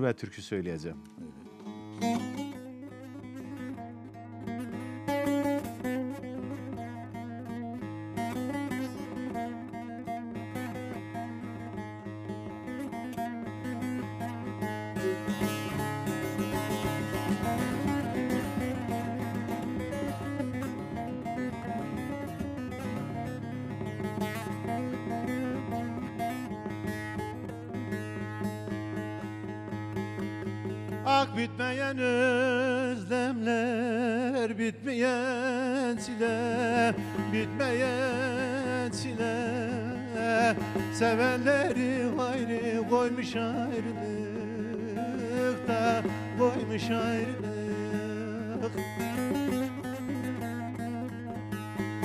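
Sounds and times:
plucked long-necked lute melody: 0:01.0 - 0:52.0.

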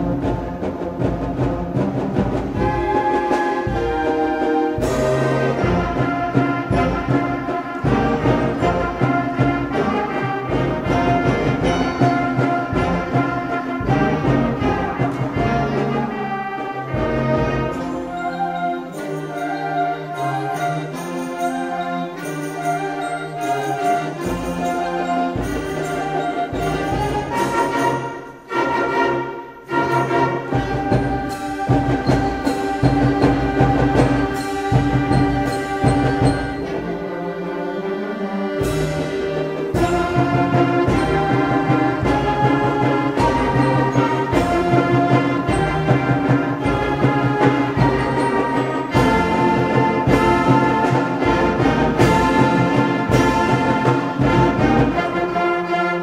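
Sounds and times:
concert band playing: 0:00.0 - 0:56.0.

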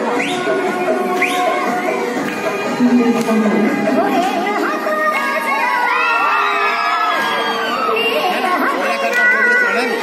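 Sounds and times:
girls shouting and cheering: 0:04.0 - 0:10.0.

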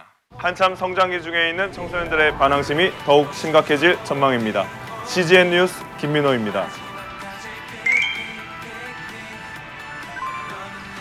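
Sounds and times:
background music: 0:00.3 - 0:11.0.

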